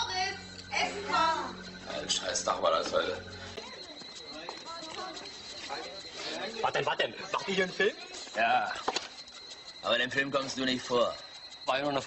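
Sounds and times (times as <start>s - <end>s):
footsteps on paving: 2.8s - 6.8s.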